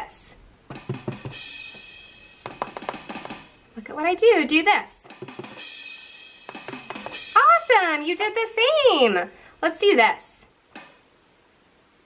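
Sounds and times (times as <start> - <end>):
sampled drum strikes: 0.7 - 3.5, 6.4 - 7.4.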